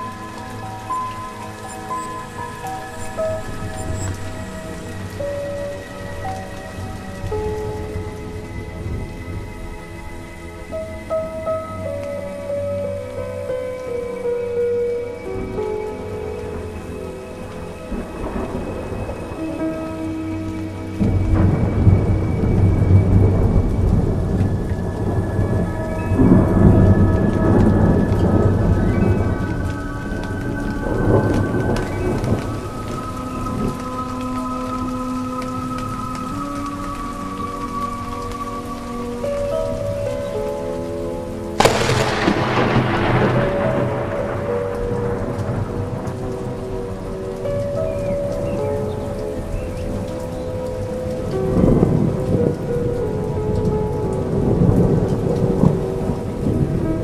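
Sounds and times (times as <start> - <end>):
thunder rolling: 0.0 - 12.4, 15.4 - 57.0
soft ambient music: 0.0 - 57.0
steady rain: 0.0 - 57.0
sharp thunderclap: 21.0 - 34.0, 41.6 - 47.1.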